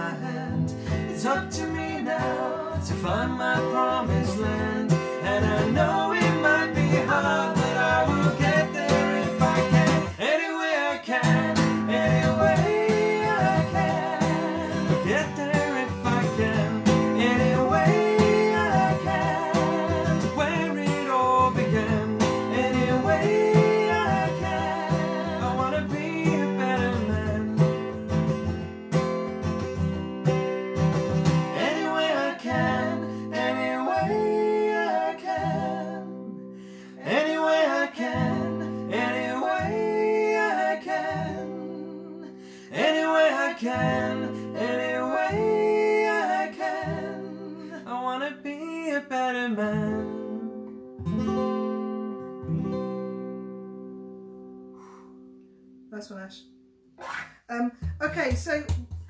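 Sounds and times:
man and woman singing: 0.0s - 28.2s, 31.3s - 50.6s
acoustic guitar strumming: 0.0s - 59.0s.

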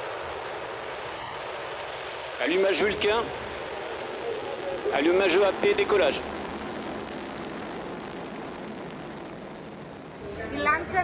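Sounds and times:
rocket engine roar: 0.0s - 11.0s.

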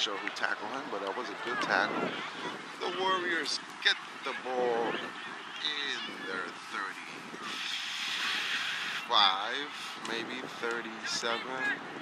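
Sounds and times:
people talking and calling out: 0.0s - 12.0s
steady outdoor hiss: 0.0s - 12.0s.

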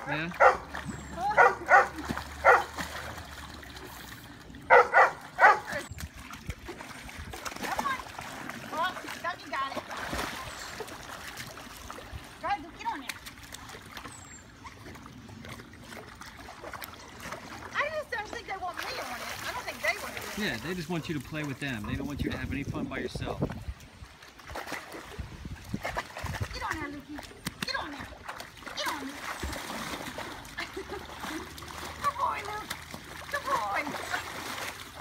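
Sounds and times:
pool water splashing: 0.0s - 35.0s
dog barking: 0.4s - 0.7s, 1.3s - 2.7s, 4.7s - 5.8s.

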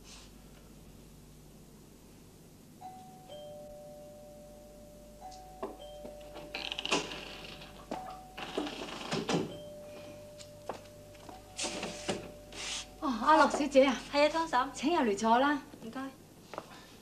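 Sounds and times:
two-note doorbell chime: 2.8s - 12.6s.

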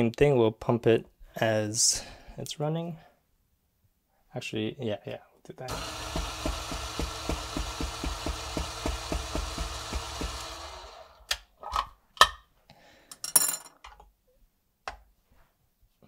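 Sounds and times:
coffee grinder humming: 5.7s - 11.3s.

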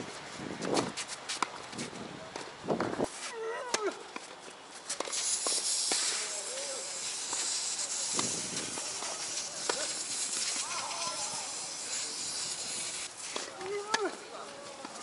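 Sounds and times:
steady hiss: 0.0s - 15.0s
tennis ball hit by rackets: 2.3s - 4.3s, 4.9s - 6.1s, 13.3s - 14.2s.

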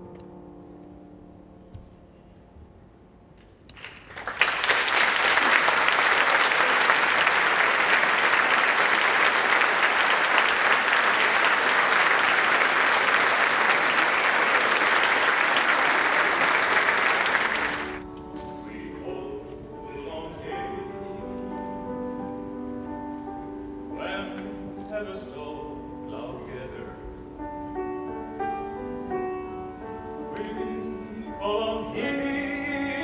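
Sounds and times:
audience applauding: 3.7s - 18.0s
grand piano playing: 4.9s - 33.0s.

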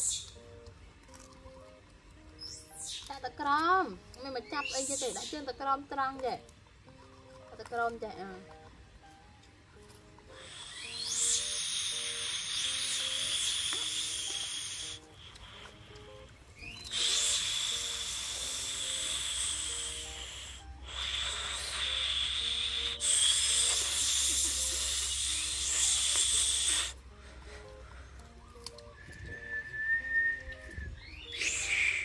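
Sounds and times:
soft background music: 0.0s - 32.0s
high hissing drone: 10.3s - 15.9s, 16.9s - 27.0s, 31.3s - 32.0s.

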